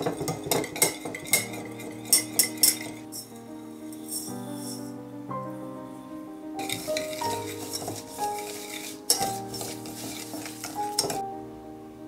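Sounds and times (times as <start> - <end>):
whisk knocking against bowl: 0.0 - 3.0, 6.6 - 11.2
background music: 0.0 - 12.0
wire whisk swishing in bowl: 6.6 - 11.2.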